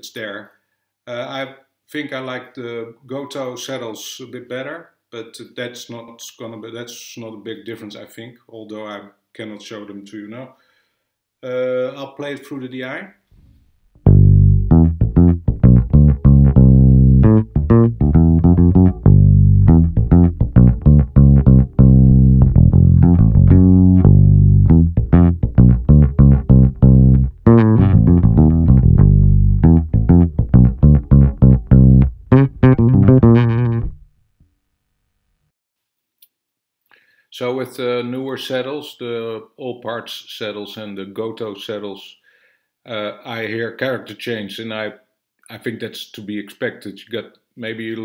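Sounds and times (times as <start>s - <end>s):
bass guitar plucked notes: 14.0s - 34.1s.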